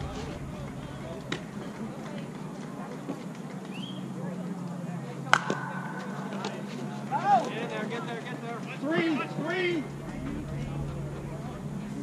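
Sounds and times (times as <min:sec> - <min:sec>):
bat hitting ball: 0:05.3 - 0:06.6
players shouting: 0:05.3 - 0:12.0.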